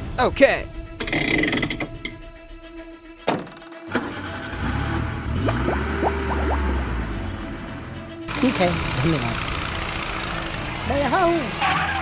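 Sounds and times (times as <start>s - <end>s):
background music: 0.0s - 12.0s
truck engine sound effect: 3.5s - 12.0s.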